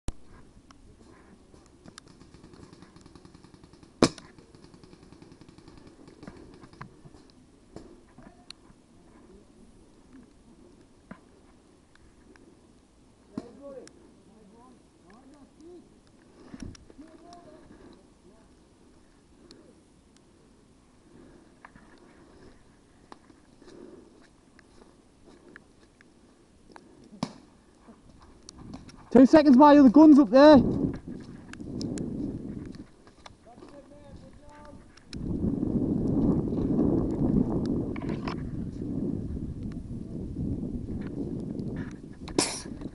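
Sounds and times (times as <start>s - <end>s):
sharp clicks: 1.6s - 7.4s
faint clicks: 30.9s - 35.3s.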